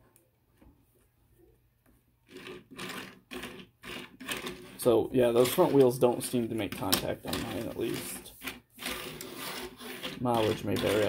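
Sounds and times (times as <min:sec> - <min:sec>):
toy car rolling on tabletop: 0:02.2 - 0:11.0.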